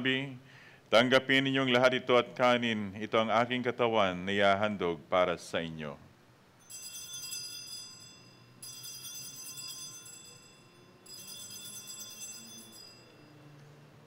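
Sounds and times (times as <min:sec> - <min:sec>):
altar bells ringing: 0:06.6 - 0:13.6.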